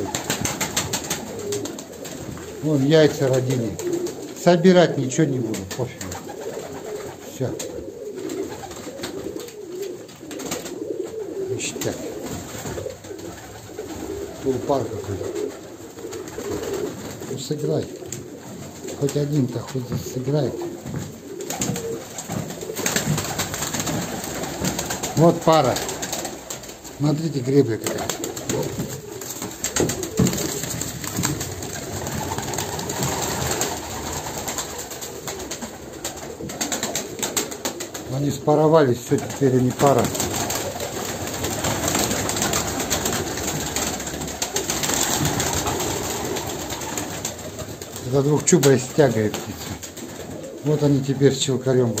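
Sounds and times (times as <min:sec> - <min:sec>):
birds clicking and scuffling: 0:00.0 - 0:52.0
pigeons cooing: 0:00.0 - 0:52.0.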